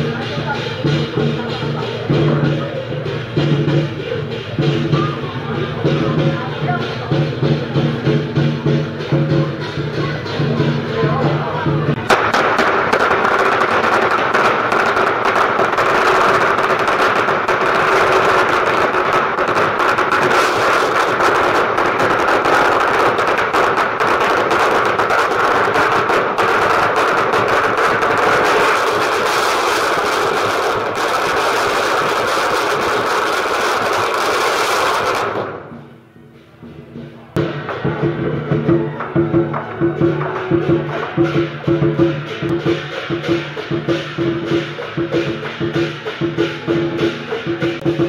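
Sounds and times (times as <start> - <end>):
firecrackers crackling: 0.0 - 48.0.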